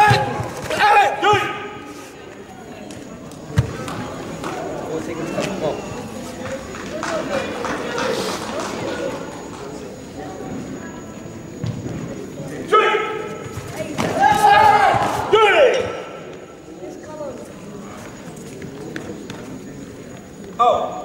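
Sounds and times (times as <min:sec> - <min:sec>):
shouted calls echoing: 0:00.0 - 0:01.9, 0:12.6 - 0:16.9.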